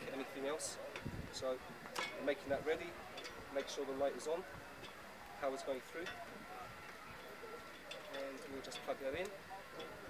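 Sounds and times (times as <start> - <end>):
faint speech: 2.8 - 10.0.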